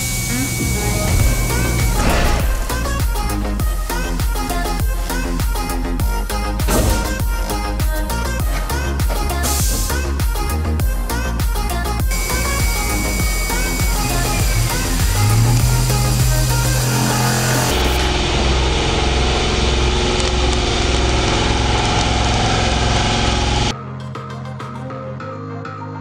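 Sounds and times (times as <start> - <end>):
milling machine cutting metal: 0.0 - 4.8, 12.1 - 23.7
background music: 0.0 - 18.4, 23.7 - 26.0
coolant spray: 12.1 - 23.7.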